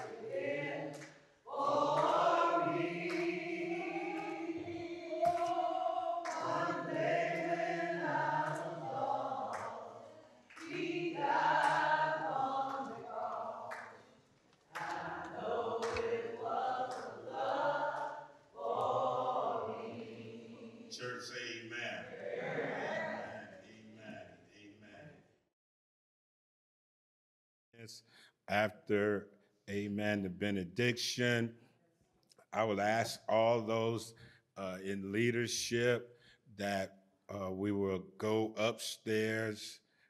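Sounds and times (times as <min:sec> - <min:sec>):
group of voices singing: 0:00.0 - 0:25.1.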